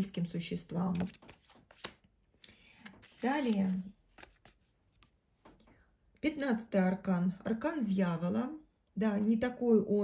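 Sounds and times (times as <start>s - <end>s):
cards clicking and sliding: 0.9s - 2.1s, 2.8s - 5.2s.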